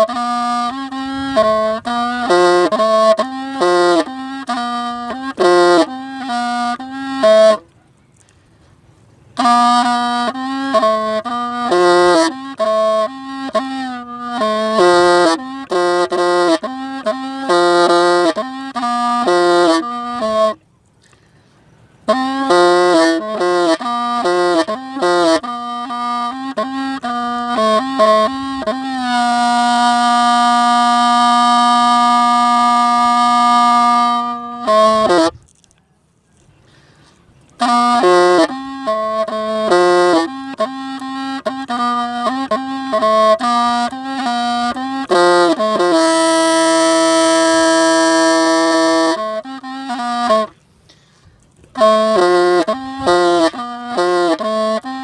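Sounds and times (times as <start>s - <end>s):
bamboo reed pipe melody: 0.0s - 55.0s.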